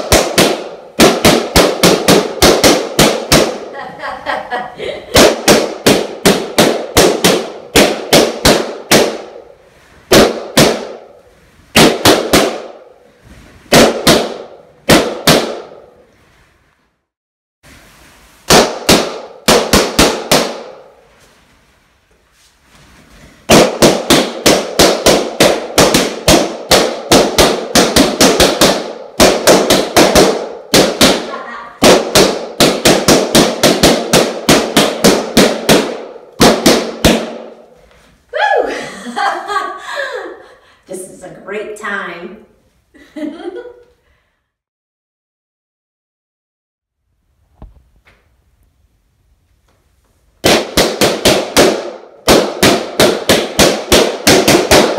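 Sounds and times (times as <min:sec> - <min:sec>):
balloons popping: 0:00.0 - 0:04.0, 0:05.1 - 0:13.1, 0:13.7 - 0:16.0, 0:18.4 - 0:21.1, 0:23.2 - 0:38.2, 0:50.4 - 0:54.9.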